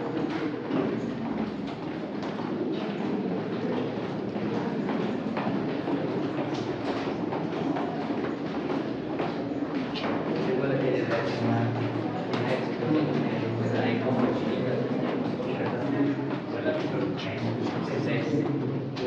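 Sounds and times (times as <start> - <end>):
crowd noise: 0.0 - 19.0
footsteps on stairs: 0.0 - 19.0.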